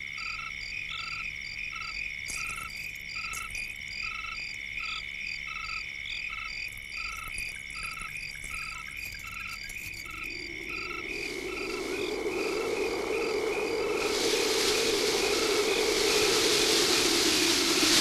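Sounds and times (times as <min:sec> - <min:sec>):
high insect trill: 0:00.0 - 0:18.0
low rushing noise: 0:10.2 - 0:18.0.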